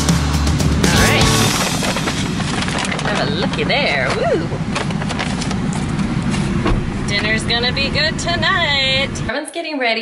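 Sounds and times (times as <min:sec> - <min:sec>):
steady low rumble: 0:00.5 - 0:09.3
paper bag rustling: 0:01.2 - 0:06.6.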